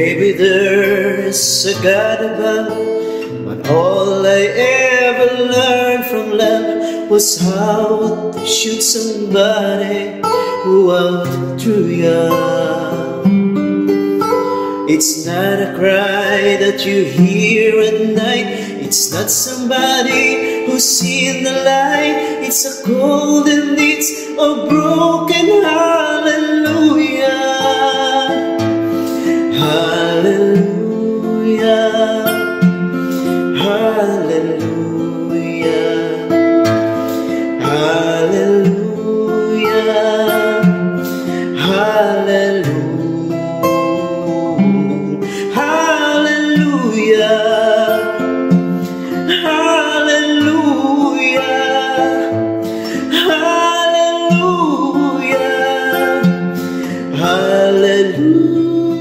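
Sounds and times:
man singing sliding notes: 0:00.0 - 0:13.2, 0:14.9 - 0:28.6, 0:29.2 - 0:32.6, 0:33.2 - 0:36.4, 0:37.2 - 0:43.4, 0:44.2 - 0:48.2, 0:49.0 - 0:59.0
acoustic guitar strummed: 0:00.0 - 0:59.0.

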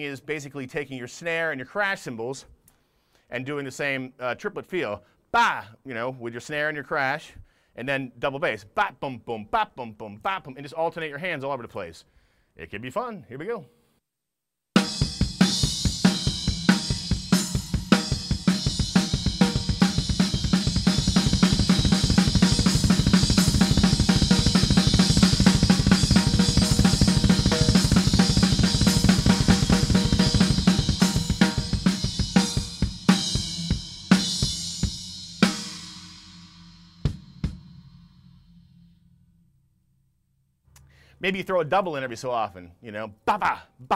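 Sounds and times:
snare drum: 0:14.8 - 0:34.2
rapid double-bass kick drum: 0:14.8 - 0:36.0.

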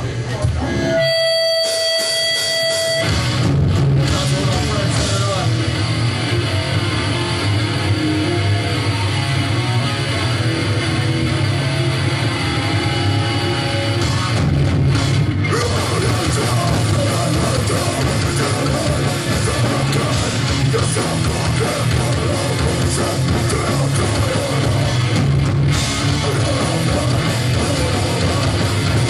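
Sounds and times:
punk band playing live: 0:00.0 - 0:29.0.

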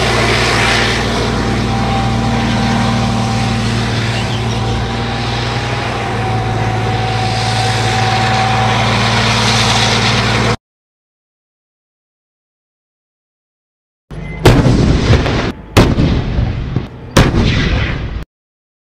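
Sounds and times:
tank engine running: 0:00.0 - 0:10.6, 0:14.1 - 0:18.2.

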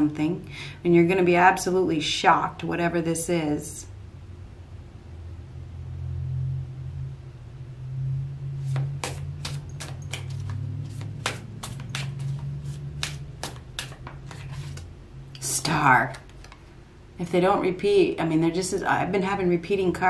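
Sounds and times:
steady low hum: 0:00.0 - 0:20.0
cards being shuffled: 0:08.6 - 0:15.5, 0:16.1 - 0:16.7.

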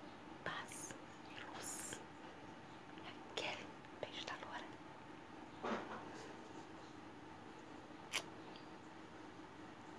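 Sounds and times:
woman whispering: 0:00.4 - 0:02.1, 0:02.9 - 0:04.8.

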